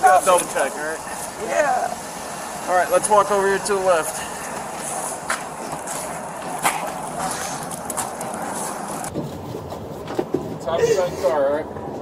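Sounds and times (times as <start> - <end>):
vehicles: 0.0 - 12.0.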